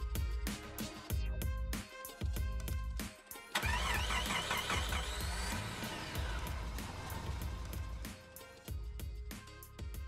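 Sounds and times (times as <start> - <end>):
background music with steady beat: 0.0 - 10.0
starter motor cranking: 3.6 - 7.7
car engine revving: 3.6 - 8.3.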